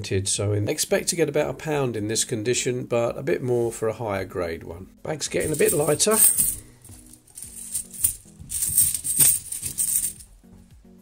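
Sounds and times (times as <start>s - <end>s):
coins jingling in a cloth bag: 5.4s - 10.4s.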